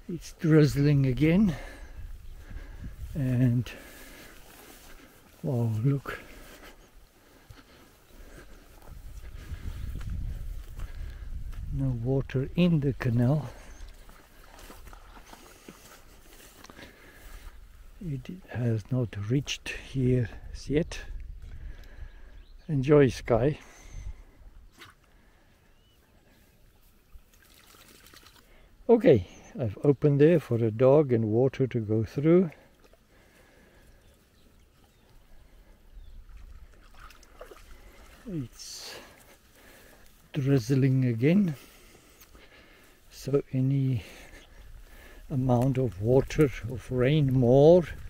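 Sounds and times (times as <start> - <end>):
dogs splashing through water: 13.6 - 17.4, 27.2 - 28.6, 32.5 - 40.3.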